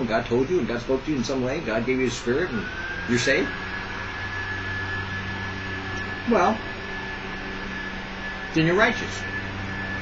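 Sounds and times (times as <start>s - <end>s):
electrical hum and hiss: 0.0s - 10.0s
high-pitched whine: 0.0s - 10.0s.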